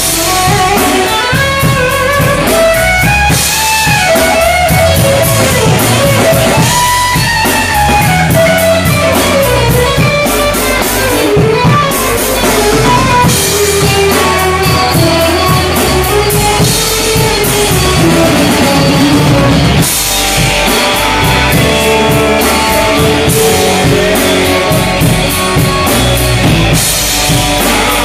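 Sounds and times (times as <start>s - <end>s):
blues band playing: 0.0s - 28.0s
electric guitar: 0.0s - 28.0s.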